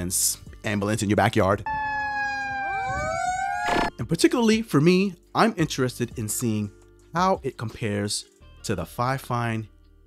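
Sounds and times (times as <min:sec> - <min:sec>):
fire truck siren wailing: 0:01.6 - 0:03.9.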